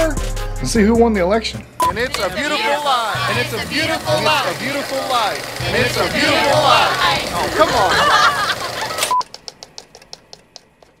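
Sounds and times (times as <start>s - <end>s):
ticking clicks: 3.3s - 7.9s, 8.5s - 11.0s.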